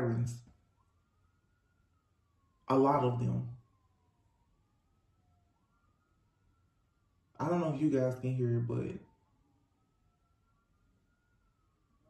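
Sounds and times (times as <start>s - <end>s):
distant sirens wailing: 0.0s - 12.0s.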